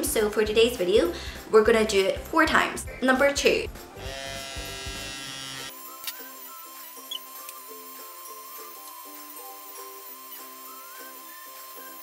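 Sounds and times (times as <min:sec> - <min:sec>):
background music with plucked notes: 0:00.0 - 0:12.0
suction pump buzzing: 0:04.0 - 0:12.0.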